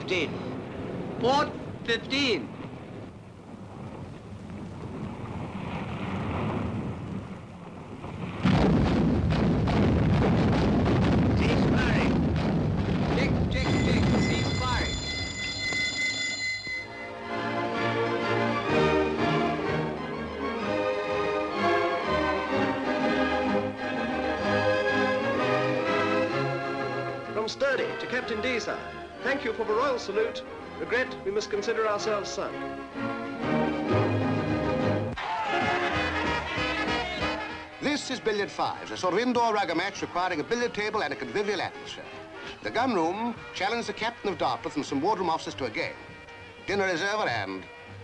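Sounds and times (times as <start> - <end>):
wind and sea rushing: 0.0 - 31.0
high steady tone: 13.6 - 17.3
film score music with bass: 17.0 - 37.6.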